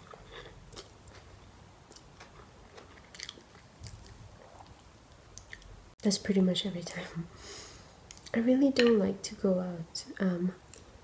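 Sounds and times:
person chewing noodles: 0.0 - 5.7.

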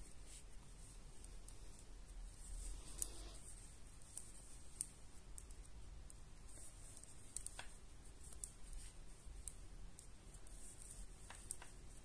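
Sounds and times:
knitting needles working yarn: 0.0 - 12.0
small sharp clicks: 11.2 - 11.8.

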